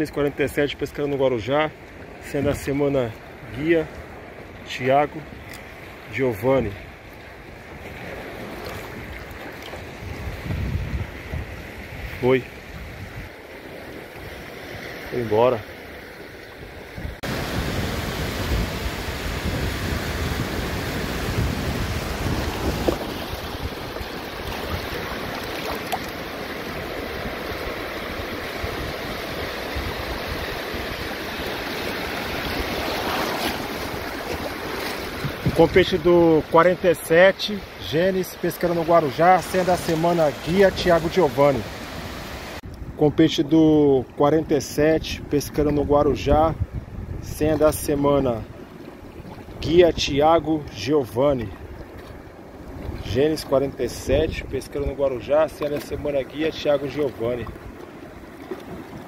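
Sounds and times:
water sloshing against kayak: 0:00.0 - 0:43.0, 0:45.3 - 0:59.0
wind buffeting microphone: 0:08.4 - 0:13.4, 0:16.6 - 0:36.1, 0:44.9 - 0:50.4.

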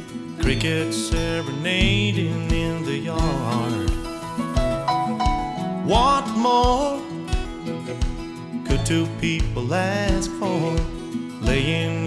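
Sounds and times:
country band playing: 0:00.0 - 0:12.0
steady drum beat: 0:00.0 - 0:12.0
lead vocal singing: 0:00.4 - 0:04.5, 0:05.8 - 0:07.2, 0:08.7 - 0:12.0.

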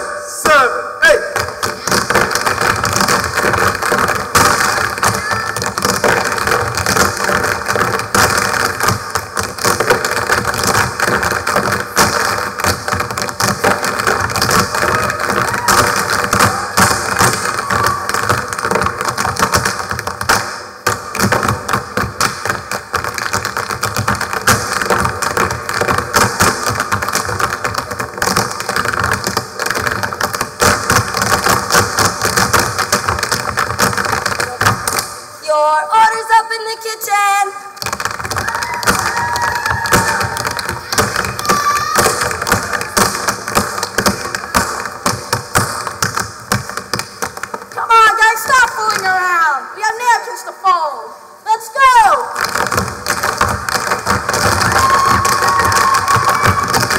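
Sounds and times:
tap shoes clicking on stage: 0:00.5 - 0:35.3, 0:37.7 - 0:49.6, 0:51.8 - 0:56.9.

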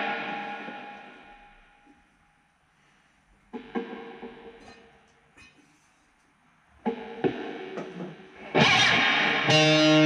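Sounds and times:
electric guitar through amplifier: 0:00.0 - 0:02.0, 0:06.8 - 0:10.0.

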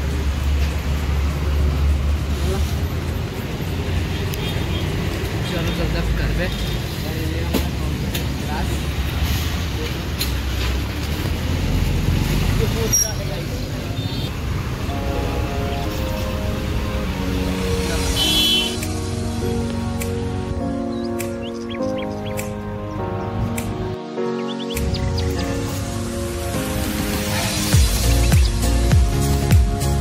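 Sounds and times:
low rumble of passing vehicles: 0:00.0 - 0:23.5.

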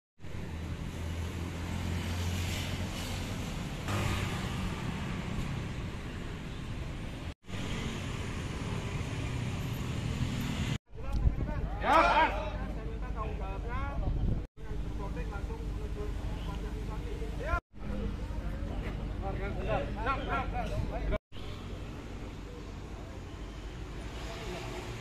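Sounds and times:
vehicles passing: 0:00.2 - 0:10.8, 0:14.6 - 0:25.0
voices: 0:11.0 - 0:21.2.

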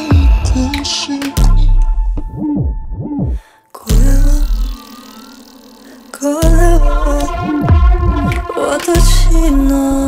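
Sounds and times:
hooting synth glides: 0:04.0 - 0:10.0
deep bass tail: 0:06.4 - 0:10.0.

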